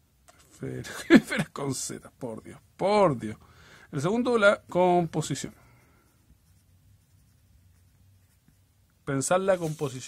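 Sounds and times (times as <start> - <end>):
pencil scratching on paper: 5.1 - 8.8.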